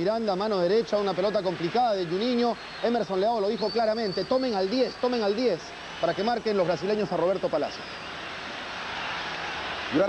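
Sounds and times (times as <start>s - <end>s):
stadium crowd roar: 0.0s - 10.0s.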